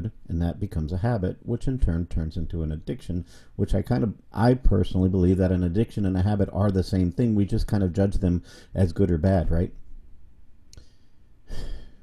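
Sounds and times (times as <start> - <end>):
man breathing close to microphone: 3.2 - 3.6, 8.4 - 8.8, 10.8 - 12.0
faint click: 10.7 - 10.9.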